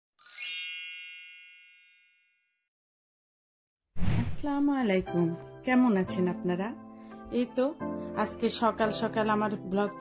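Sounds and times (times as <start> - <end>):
bright chime: 0.2 - 2.6.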